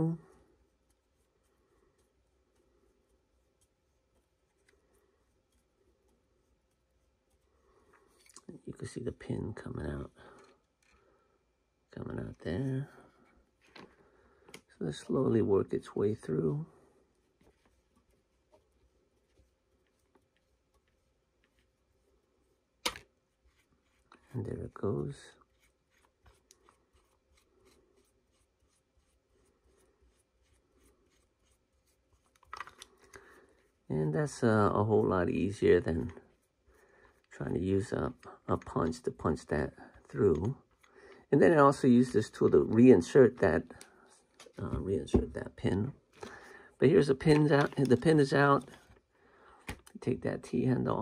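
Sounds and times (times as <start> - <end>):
person speaking: 0.0 - 0.5, 8.2 - 10.6, 11.8 - 13.8, 14.5 - 17.6, 24.1 - 25.5, 32.6 - 36.4, 37.2 - 49.0, 49.7 - 51.0
small ticks and creaks of tool: 10.3 - 11.2.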